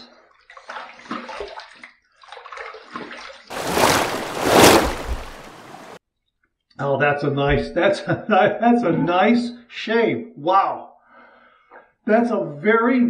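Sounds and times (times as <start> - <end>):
water splashing from sink: 0.5 - 6.0.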